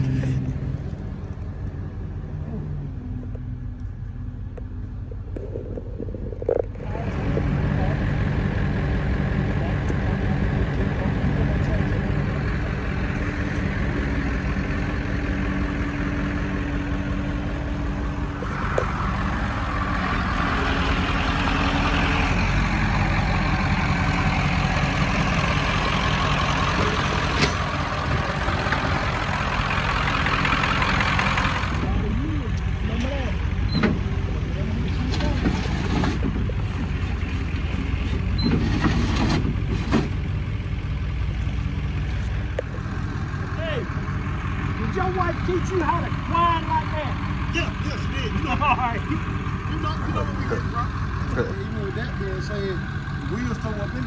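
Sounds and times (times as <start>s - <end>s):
tow truck engine running: 0.0s - 54.0s.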